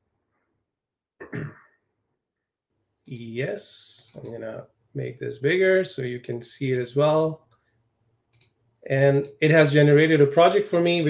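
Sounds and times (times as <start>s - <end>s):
man clearing his throat: 1.2s - 1.8s.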